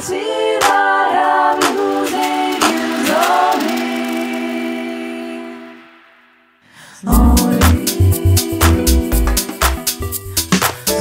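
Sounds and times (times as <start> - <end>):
choir-like sung vocals: 0.0 - 10.0
electronic house music: 7.1 - 10.0.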